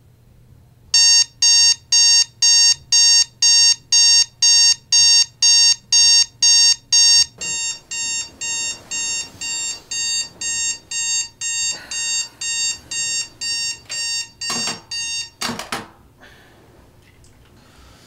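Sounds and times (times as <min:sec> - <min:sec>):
digital alarm clock beeping: 0:01.0 - 0:15.4.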